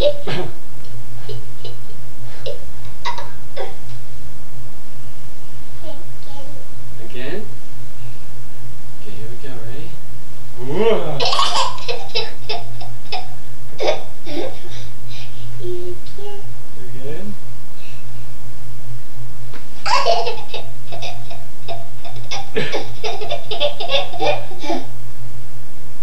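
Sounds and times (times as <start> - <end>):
toddler laughing: 0.0 - 0.3, 2.4 - 3.8, 11.2 - 16.5, 19.8 - 24.9
steady low hum: 0.0 - 26.0.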